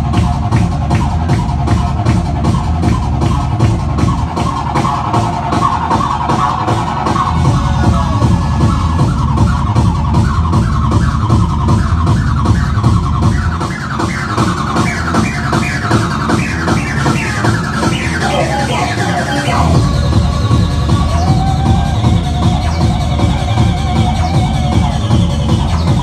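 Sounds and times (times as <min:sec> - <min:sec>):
acid techno music: 0:00.0 - 0:26.0
fast kick drum beat: 0:00.0 - 0:26.0.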